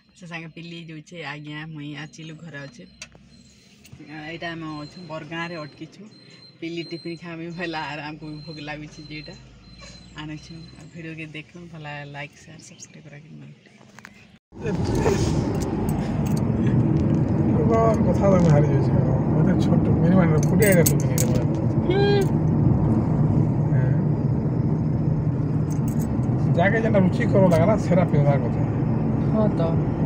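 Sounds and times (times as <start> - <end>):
car road and engine noise: 0.0 - 30.0.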